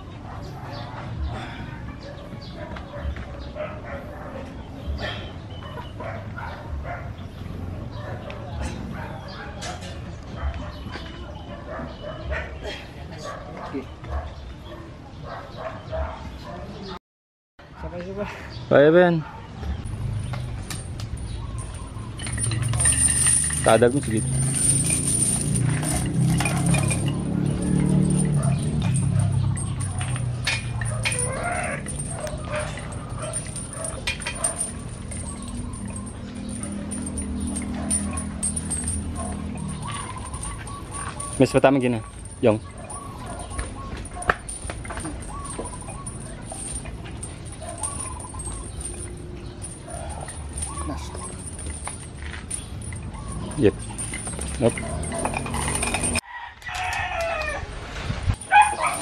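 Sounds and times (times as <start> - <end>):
outdoor background noise: 0.0 - 17.0, 17.6 - 59.0
chains clinking on weights: 19.8 - 56.2, 58.3 - 59.0.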